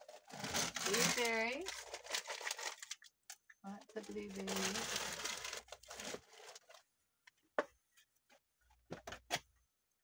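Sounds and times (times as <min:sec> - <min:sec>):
plastic bag rustling: 0:00.0 - 0:03.1, 0:03.8 - 0:06.9.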